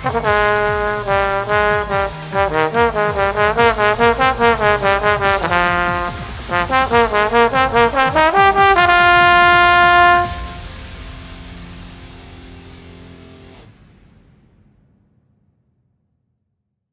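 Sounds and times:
trombone playing: 0:00.0 - 0:10.7.

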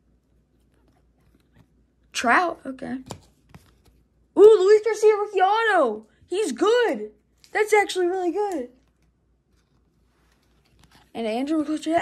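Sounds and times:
trading cards being flipped: 0:03.0 - 0:04.1, 0:08.4 - 0:11.2.

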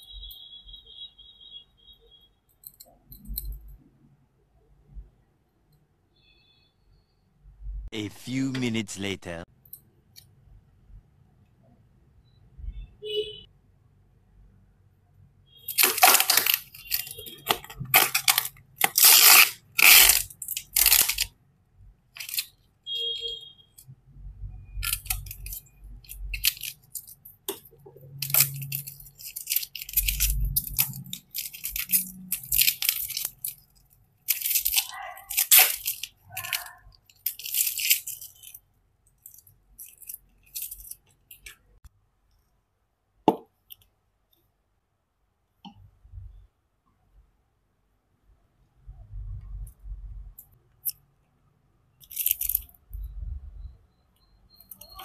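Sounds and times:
plastic packaging crinkling and tearing: 0:15.7 - 0:21.3, 0:22.2 - 0:22.6, 0:24.8 - 0:27.6, 0:28.2 - 0:38.6.

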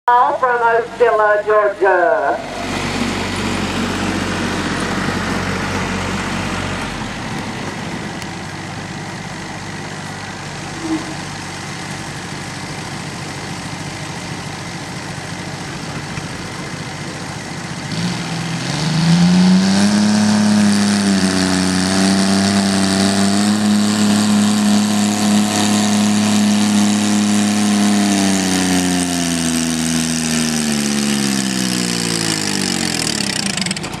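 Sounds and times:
tractor engine revving: 0:00.0 - 0:34.0.

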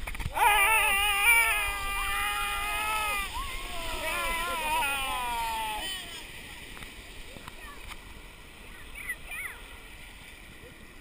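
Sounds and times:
river rushing: 0:00.2 - 0:11.0
people screaming: 0:00.3 - 0:06.4.

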